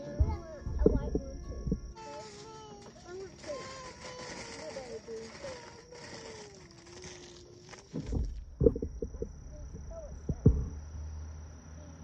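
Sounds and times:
faint outdoor background noise: 0.0s - 12.0s.

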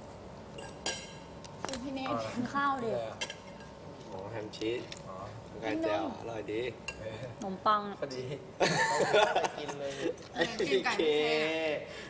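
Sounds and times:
dishes and cutlery clinking: 0.6s - 1.3s.

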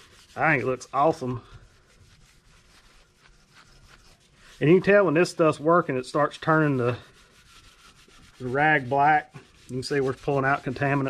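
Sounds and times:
rag rubbing on metal: 0.0s - 11.0s.

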